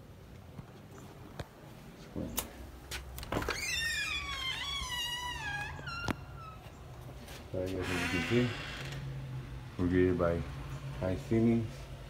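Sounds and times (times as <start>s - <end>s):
door hinges squeaking: 3.2s - 6.9s, 7.6s - 9.1s.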